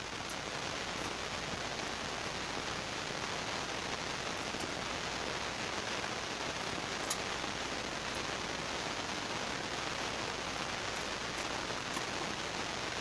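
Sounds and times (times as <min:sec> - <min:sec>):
rain-like hiss: 0:00.0 - 0:13.0
faint ticks: 0:07.0 - 0:07.3.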